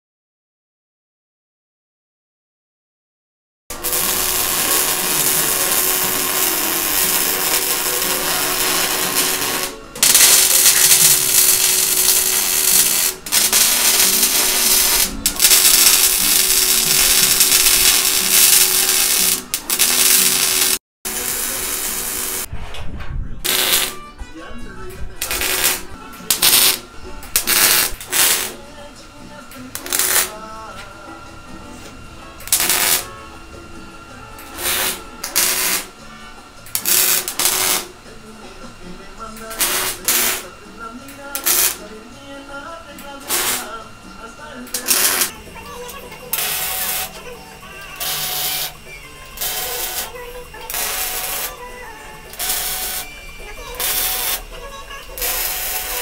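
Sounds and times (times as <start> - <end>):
welding arc crackling: 3.7 - 22.5, 23.4 - 24.0, 25.2 - 28.6, 29.7 - 30.4, 32.4 - 33.2, 34.4 - 36.0, 36.7 - 38.0, 39.4 - 40.6, 41.2 - 41.9, 43.1 - 44.0, 44.7 - 56.0.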